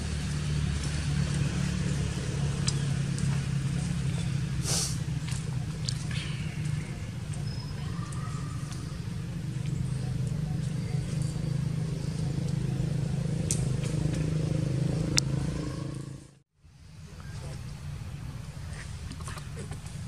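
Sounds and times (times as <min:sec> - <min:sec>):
vehicle engine running: 0:00.0 - 0:16.4.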